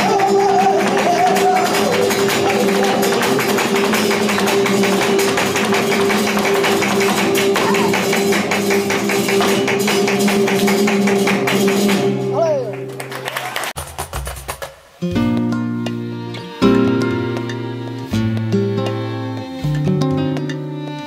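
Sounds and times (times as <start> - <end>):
dancer's stamping footwork: 0.0 - 12.1, 13.8 - 21.0
flamenco guitars playing chords: 0.0 - 21.0
rhythmic hand-clapping: 0.0 - 21.0.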